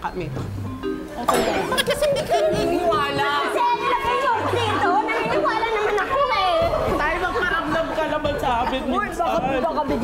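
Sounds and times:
background music: 0:00.0 - 0:10.0
people chattering: 0:00.8 - 0:10.0.

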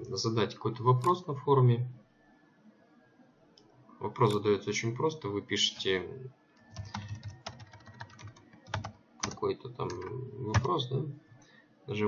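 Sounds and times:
computer keyboard key presses: 0:06.6 - 0:10.7.

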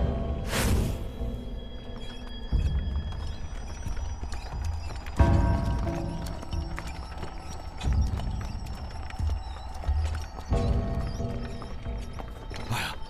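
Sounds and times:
hooves clip-clopping on dirt: 0:01.8 - 0:13.0.

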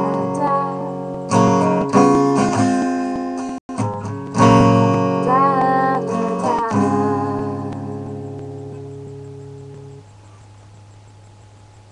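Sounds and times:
acoustic guitar chord ringing: 0:00.0 - 0:11.7.

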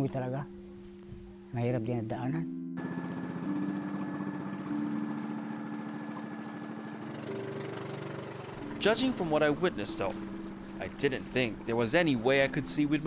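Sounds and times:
boat engine running: 0:02.8 - 0:13.0.

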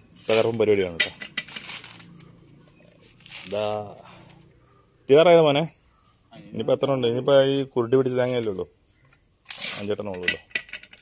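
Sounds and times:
coconut husk fibres cracking: 0:00.2 - 0:02.4, 0:03.0 - 0:03.9.

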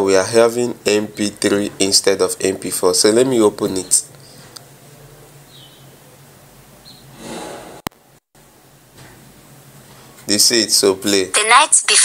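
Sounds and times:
faint room hum: 0:00.0 - 0:07.4, 0:08.0 - 0:12.0
breathy rush of noise: 0:07.1 - 0:08.2.

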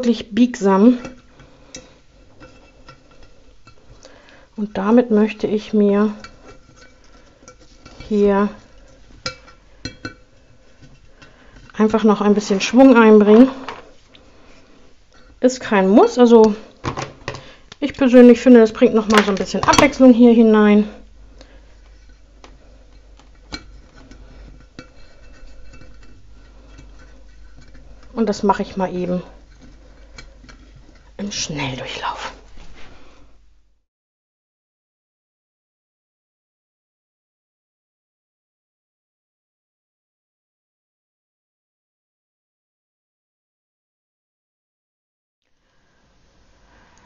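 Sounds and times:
twigs scraping against glass vase: 0:06.2 - 0:12.8, 0:21.7 - 0:32.8.

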